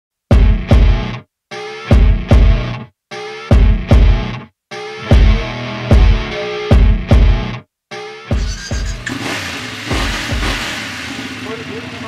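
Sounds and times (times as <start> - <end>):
background music with a beat: 0.3 - 9.1, 9.9 - 10.9
motorcycle engine starting and running: 8.4 - 12.0.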